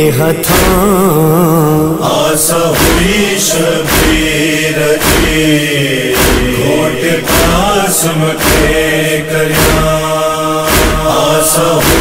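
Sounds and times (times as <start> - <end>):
sharp percussive beat: 0.5 - 0.9, 2.7 - 12.0.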